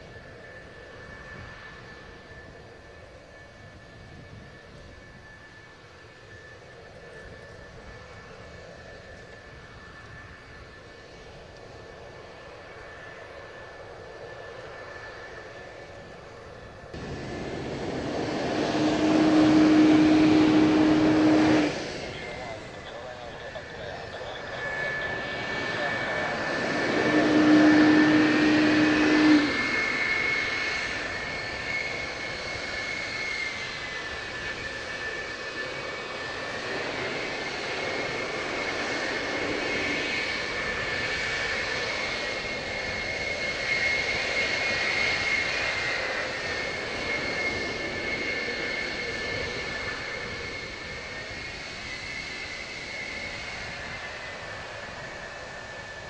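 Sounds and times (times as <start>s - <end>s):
jet engines whining: 0.0s - 56.0s
low hum: 17.0s - 30.0s.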